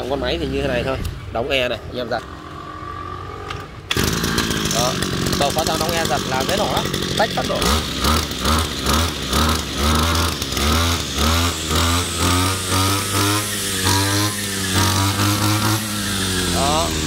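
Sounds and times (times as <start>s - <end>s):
brush cutter running: 2.0s - 17.0s.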